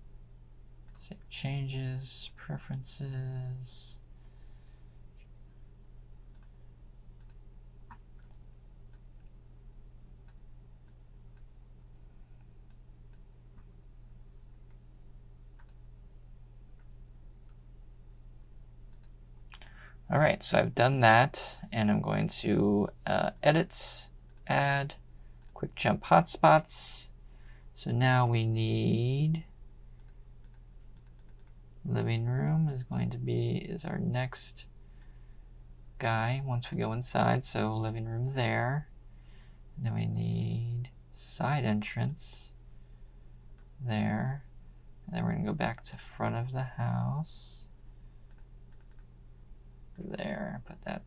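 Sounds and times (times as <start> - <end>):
steady low hum: 0.0 - 51.0
faint computer mouse clicks: 6.3 - 6.6, 7.2 - 9.3, 15.6 - 15.8, 18.9 - 19.7, 30.0 - 31.6, 48.3 - 49.1.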